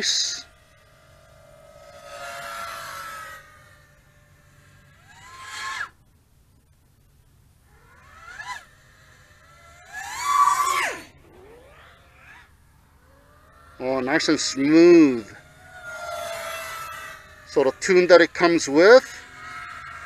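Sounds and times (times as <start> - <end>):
quadcopter motors whining: 0.0 - 20.0.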